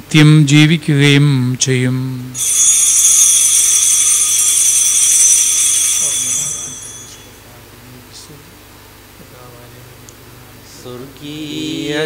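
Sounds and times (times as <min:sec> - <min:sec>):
altar bells jingling: 0:02.4 - 0:07.4.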